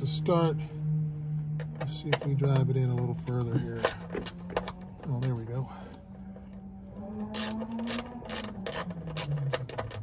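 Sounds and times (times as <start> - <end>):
wrench ratcheting clicks: 7.3 - 9.4.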